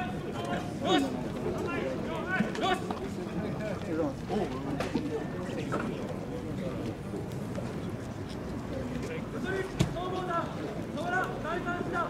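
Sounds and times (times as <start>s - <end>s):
outdoor background noise: 0.0s - 12.0s
people talking in background: 0.0s - 12.0s.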